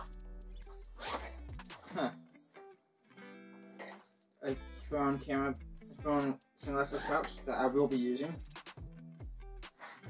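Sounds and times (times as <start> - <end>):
background music: 0.0 - 10.0
backpack zipper pulled: 1.0 - 2.1, 6.9 - 7.4.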